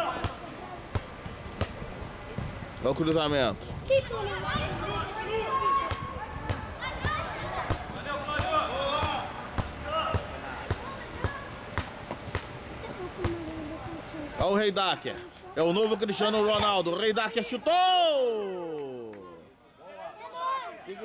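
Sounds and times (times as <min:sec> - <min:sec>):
ball kicked and bouncing: 0:05.9 - 0:12.5.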